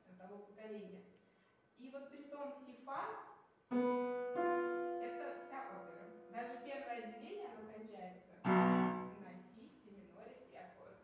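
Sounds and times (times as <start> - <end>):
upright piano chords: 3.7 - 6.7, 8.4 - 9.2.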